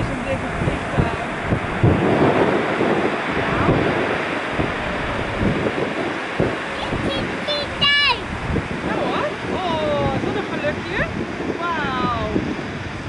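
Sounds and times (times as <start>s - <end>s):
jet engines rumbling: 0.0s - 13.0s
wind buffeting microphone: 0.0s - 13.0s.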